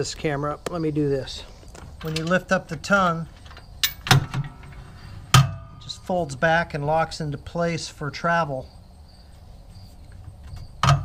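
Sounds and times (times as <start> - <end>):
metal clank of jack: 3.4 - 5.8, 10.5 - 11.0.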